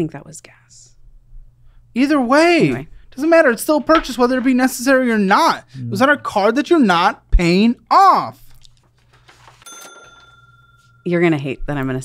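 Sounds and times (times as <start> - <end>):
bright bell ding: 9.6 - 11.1.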